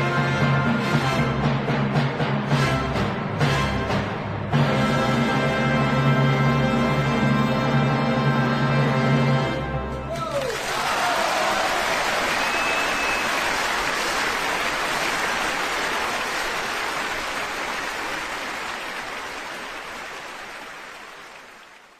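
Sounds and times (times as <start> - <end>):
audience applauding: 10.1 - 21.9
high whistle: 12.2 - 13.7.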